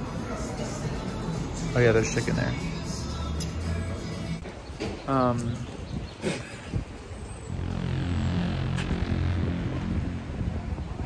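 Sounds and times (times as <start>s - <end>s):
motor engine droning: 7.4s - 11.0s.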